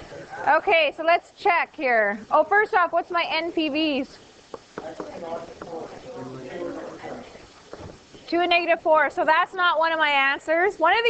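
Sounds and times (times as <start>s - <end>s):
faint voices murmuring: 4.8s - 8.1s.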